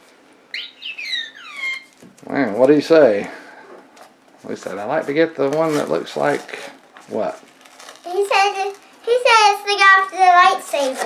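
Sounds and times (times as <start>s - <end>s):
robot beeping and whistling: 0.5s - 2.0s.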